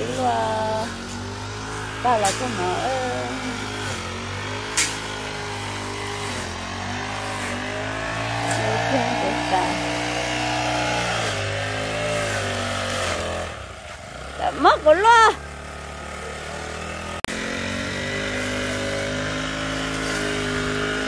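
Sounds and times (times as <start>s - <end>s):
brush cutter engine cutting grass: 0.0s - 21.0s.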